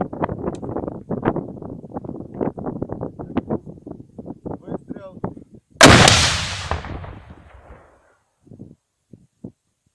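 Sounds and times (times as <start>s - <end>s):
grenade launcher blast: 5.8s - 7.9s
echo rolling away: 5.8s - 8.0s.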